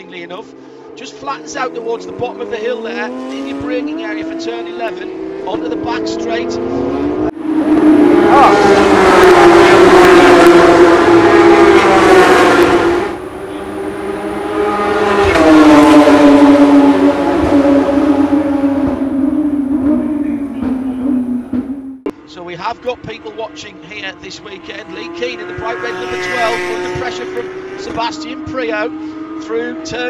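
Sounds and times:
race car engines at high revs: 0.4 - 22.2, 22.8 - 30.0.

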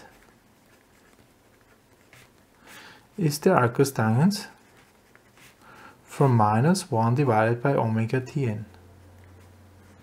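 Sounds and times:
pen scratching on paper: 0.0 - 2.7, 4.5 - 5.6.

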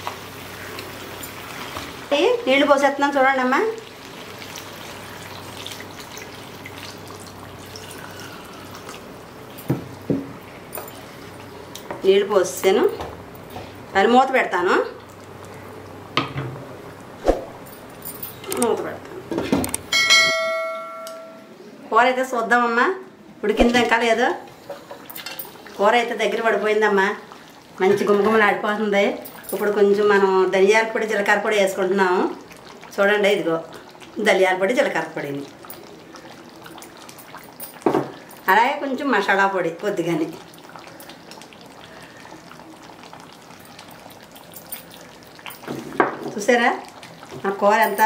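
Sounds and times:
curry bubbling and sizzling: 0.0 - 16.0, 23.6 - 48.0.

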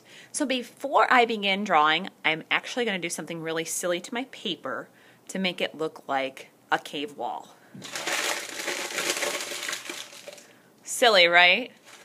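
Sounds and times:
paper being crumpled: 7.8 - 10.4, 11.8 - 12.0.

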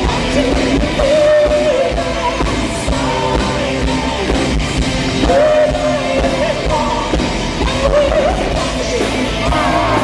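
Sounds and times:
drums: 0.0 - 10.0
electric guitar: 0.0 - 10.0
woman singing: 5.2 - 10.0.

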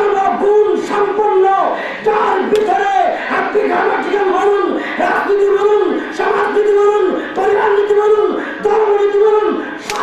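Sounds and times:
man chanting through loudspeakers: 0.0 - 10.0.

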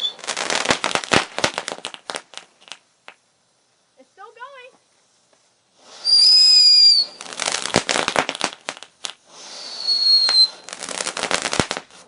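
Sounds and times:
firework shrill whistle: 0.0 - 0.9, 5.8 - 8.2, 9.3 - 11.8
firework crackling pops: 0.0 - 3.3, 5.2 - 12.0.

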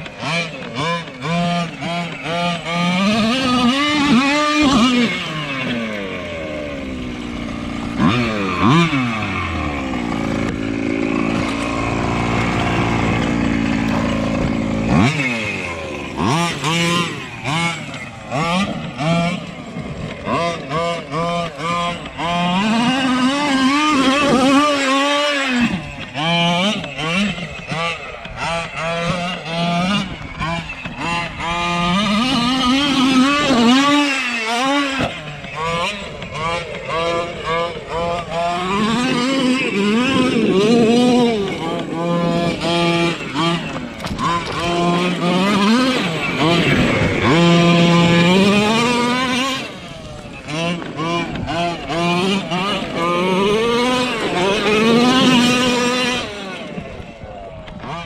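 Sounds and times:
two-stroke engine revving: 0.0 - 58.0.

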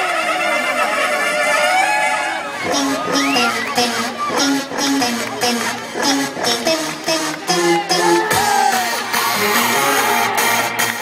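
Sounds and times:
children shouting and cheering: 0.5 - 11.0.

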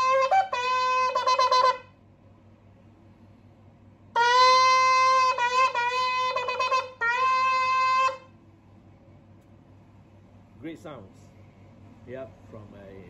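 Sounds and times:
shofar blasts: 0.0 - 2.0, 4.1 - 8.4.

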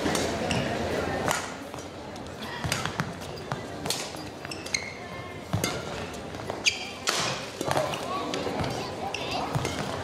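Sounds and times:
racket hitting shuttlecock: 0.0 - 1.6, 2.6 - 4.2, 5.5 - 8.8, 9.4 - 10.0
indoor crowd murmur: 0.0 - 10.0
shoes squeaking on court: 0.4 - 0.8, 2.6 - 10.0.

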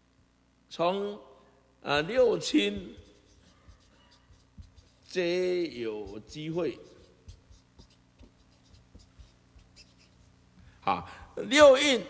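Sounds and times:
marker pen scratching on paper: 2.5 - 10.7.

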